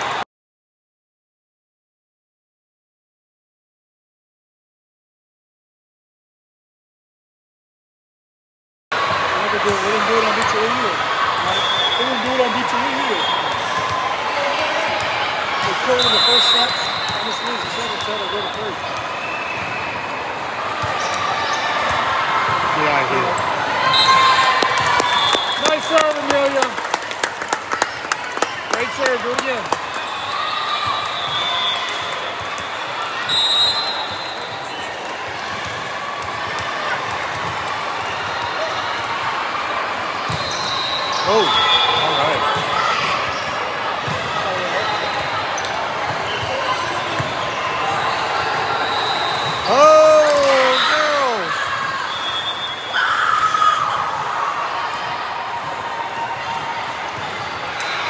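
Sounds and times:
voices of players and spectators: 8.9s - 58.0s
sneakers squeaking on floor: 15.7s - 20.1s, 20.8s - 22.0s, 40.3s - 49.9s.

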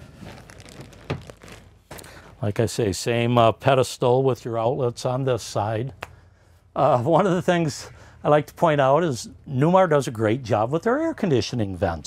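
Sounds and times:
faint rustling: 0.0s - 2.6s.

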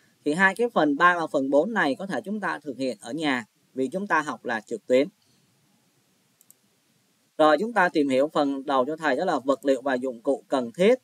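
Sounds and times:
computer mouse clicks: 6.4s - 6.6s.

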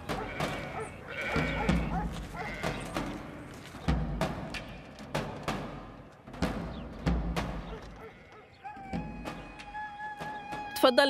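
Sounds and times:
animal call: 0.0s - 3.1s, 7.7s - 10.7s.

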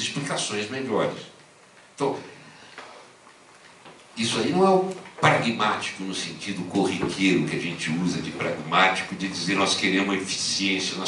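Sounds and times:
man speaking into a microphone: 0.0s - 1.4s, 2.0s - 2.4s, 4.2s - 11.0s.

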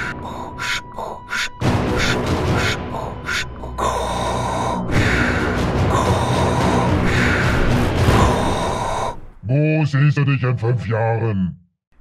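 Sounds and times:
low background music: 0.0s - 9.2s.

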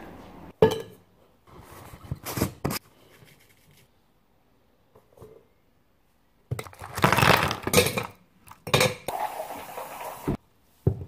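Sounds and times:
ice cubes clattering: 6.5s - 8.7s.

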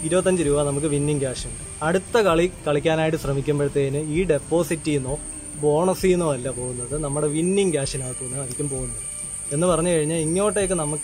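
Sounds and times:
high-pitched whine: 0.0s - 11.0s
man talking: 0.0s - 11.0s.

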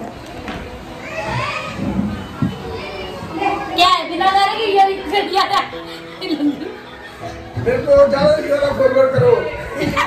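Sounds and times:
voices of children and adults: 0.7s - 10.0s.

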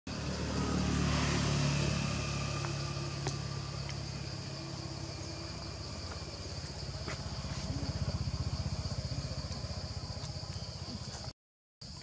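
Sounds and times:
vehicle engine running: 0.1s - 11.3s
insects buzzing: 0.1s - 12.0s.

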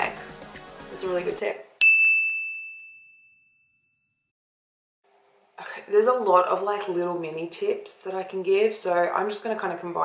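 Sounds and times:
bright bell-like ding: 1.8s - 4.3s.

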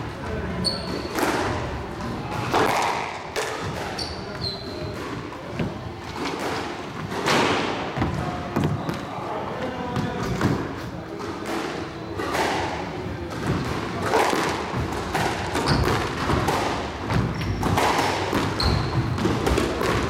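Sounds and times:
shoes squeaking on court: 0.6s - 1.2s, 3.6s - 7.2s, 15.4s - 16.4s, 17.1s - 19.6s
racquet striking ball: 2.4s - 8.8s, 11.4s - 20.0s.

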